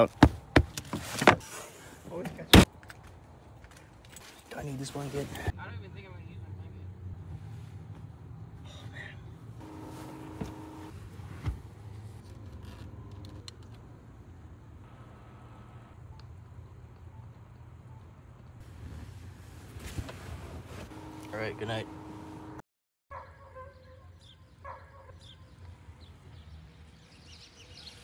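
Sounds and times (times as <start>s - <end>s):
vehicle engines humming: 4.6s - 22.6s.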